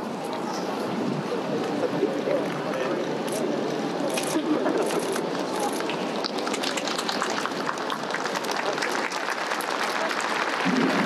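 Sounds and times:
crowd clapping: 0:04.1 - 0:11.0.

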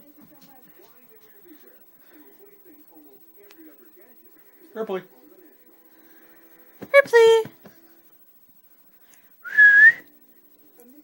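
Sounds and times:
person whistling: 0:09.4 - 0:10.1.

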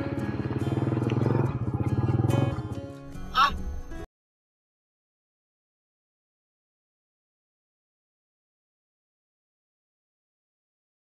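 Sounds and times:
motorcycle engine running: 0:00.0 - 0:03.2
background music: 0:00.0 - 0:04.1.

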